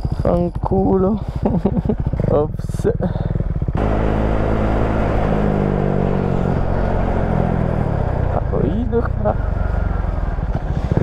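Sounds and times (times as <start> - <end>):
motorcycle engine running: 0.0 - 11.0
wind and road noise: 0.0 - 11.0.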